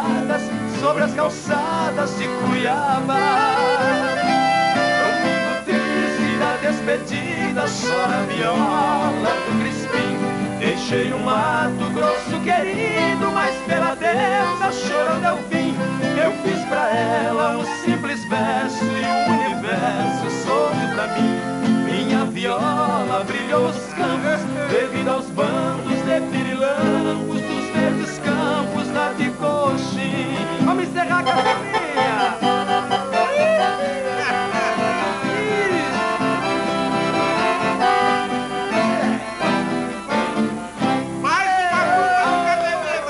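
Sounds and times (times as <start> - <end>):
accordion: 0.0 - 43.0
acoustic guitars strummed: 0.0 - 43.0.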